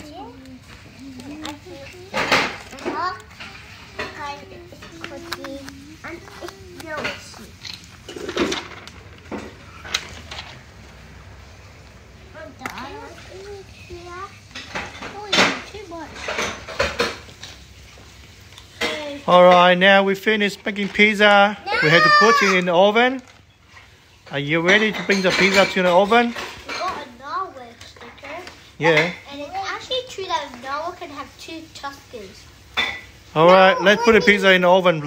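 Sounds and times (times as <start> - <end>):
children talking: 0.0 - 8.5, 12.2 - 17.2, 21.5 - 22.9, 25.2 - 35.0
stickers clicking and clattering: 0.0 - 10.6.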